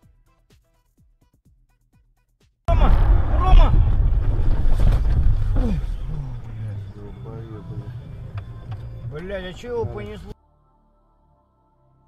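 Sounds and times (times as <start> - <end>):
road and wind rumble: 2.9 - 10.4
voices in car: 5.5 - 10.4.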